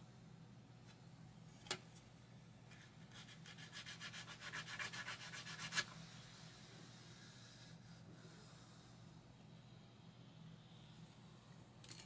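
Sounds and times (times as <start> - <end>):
sanding stick on plastic: 3.1 - 6.0.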